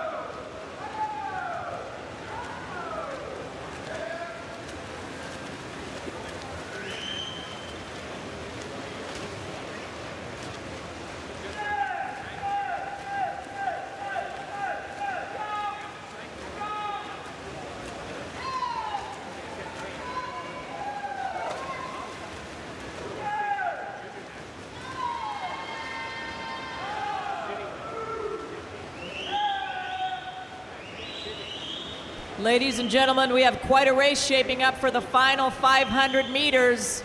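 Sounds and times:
indoor pool hall noise: 0.0s - 37.0s.

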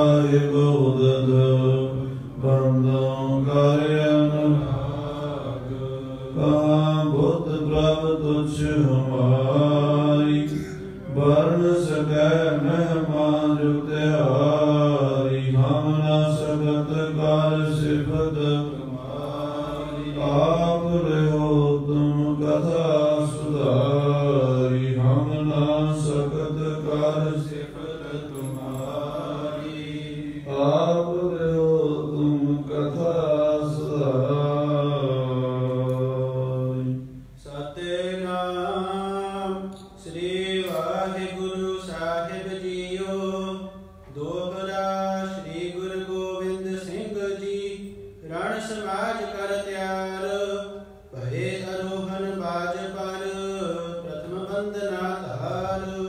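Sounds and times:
man chanting melodically: 0.0s - 56.0s.

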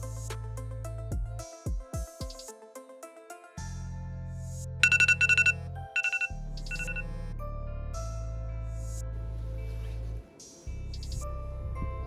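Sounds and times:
phone ringing with trilling beeps: 4.8s - 7.1s.

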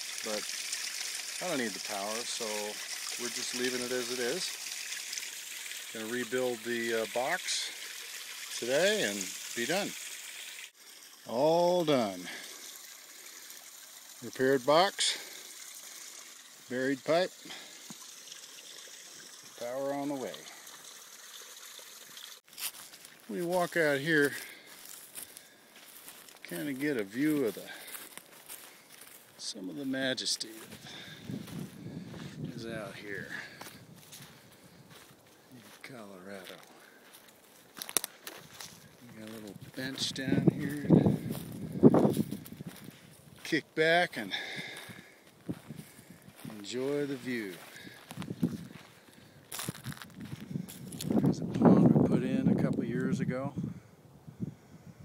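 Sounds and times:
water trickling: 0.0s - 51.4s
footsteps on dry forest ground: 22.4s - 43.5s, 44.2s - 51.3s.

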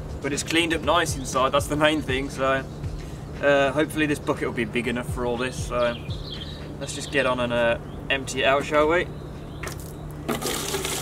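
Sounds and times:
liquid pouring into a bucket: 10.3s - 11.0s.

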